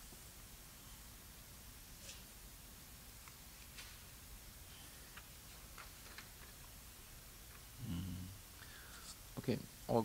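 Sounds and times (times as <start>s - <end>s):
book pages turning: 5.0s - 6.7s.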